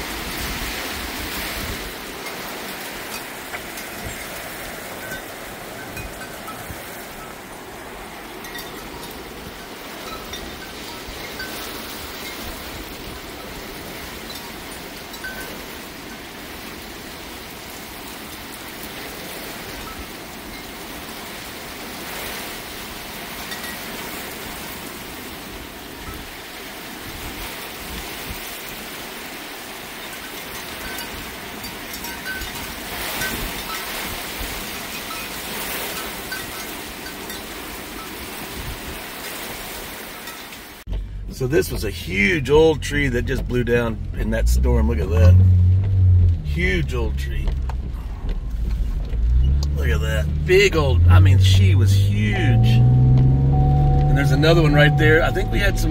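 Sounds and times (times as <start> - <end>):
heavy rain pouring: 0.0 - 55.9
metal wind chime ringing: 3.1 - 7.5, 8.3 - 12.8, 13.4 - 15.8, 30.2 - 38.2, 50.0 - 55.9.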